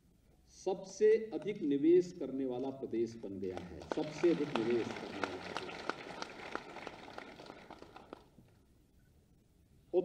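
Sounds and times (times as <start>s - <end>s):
audience applause: 3.6s - 8.3s.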